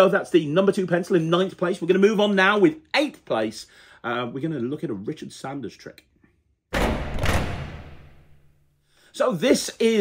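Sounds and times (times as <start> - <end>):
sudden hit: 6.7 - 8.6.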